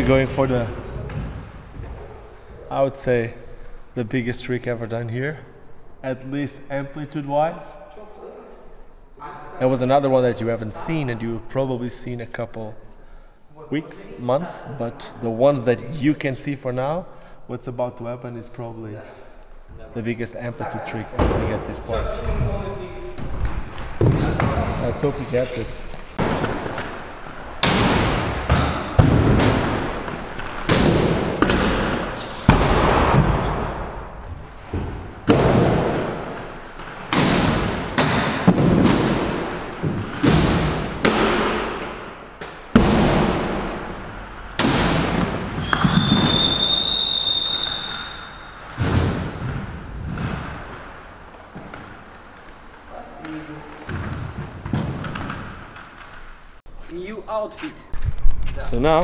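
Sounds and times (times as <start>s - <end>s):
inline skates thudding on wooden ramp: 21.2s - 56.4s
skate wheels rolling: 21.7s - 57.2s.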